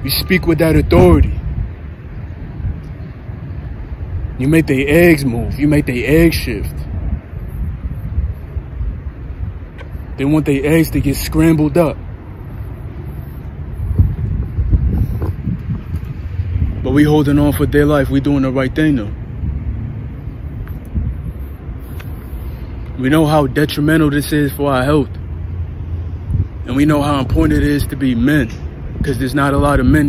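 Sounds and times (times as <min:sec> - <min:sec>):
low outdoor rumble: 0:00.0 - 0:30.0
wind buffeting microphone: 0:00.0 - 0:30.0.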